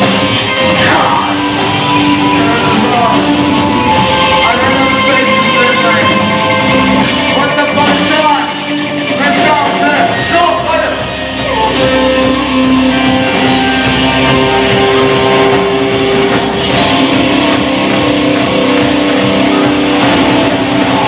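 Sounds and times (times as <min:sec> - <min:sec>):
person singing: 0:00.0 - 0:08.0
drums: 0:00.0 - 0:21.0
electric guitars: 0:00.0 - 0:21.0.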